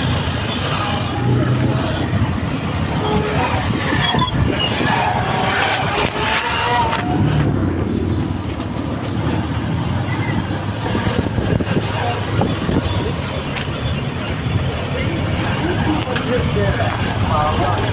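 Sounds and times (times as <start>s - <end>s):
indistinct voices: 0.0s - 17.9s
vehicle engines rumbling: 0.0s - 17.9s.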